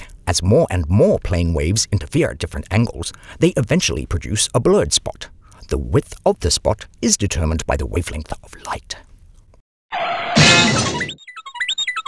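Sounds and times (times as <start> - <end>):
cartoon shattering crash: 10.0 - 11.2.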